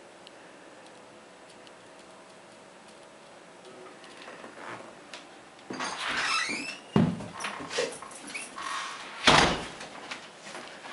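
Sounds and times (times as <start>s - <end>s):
room noise: 0.0s - 10.9s.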